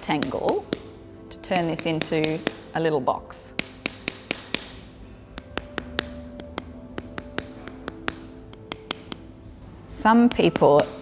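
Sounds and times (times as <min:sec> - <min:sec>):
wooden spatula slapping clay: 0:00.0 - 0:02.7, 0:03.6 - 0:04.8, 0:05.4 - 0:09.3, 0:10.2 - 0:11.0
faint background music: 0:00.0 - 0:11.0.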